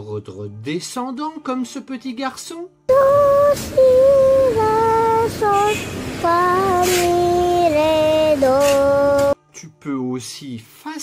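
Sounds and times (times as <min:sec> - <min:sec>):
child singing a descending scale: 0:02.9 - 0:09.4.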